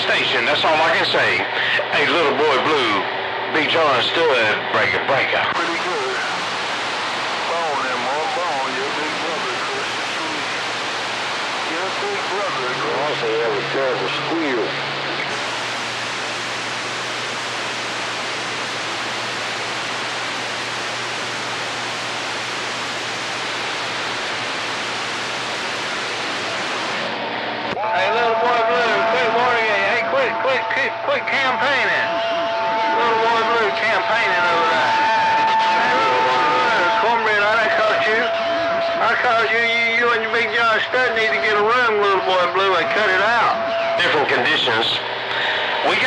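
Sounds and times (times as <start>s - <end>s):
radio transmission voice: 0.0s - 10.7s, 11.5s - 15.6s, 27.8s - 35.0s, 35.8s - 46.0s
radio static hiss: 0.0s - 46.0s
steady radio whistle: 0.0s - 46.0s.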